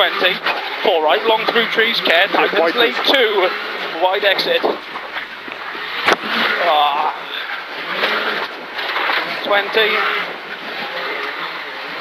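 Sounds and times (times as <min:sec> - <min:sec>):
rally car engine: 0:00.0 - 0:10.4
gravel road noise: 0:00.0 - 0:12.0.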